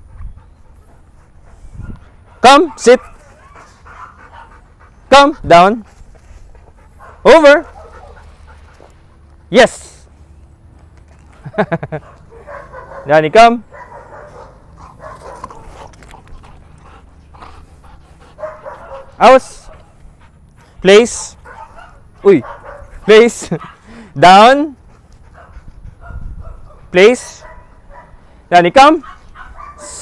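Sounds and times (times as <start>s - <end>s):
dog panting faintly: 0.0s - 10.3s, 13.7s - 30.0s.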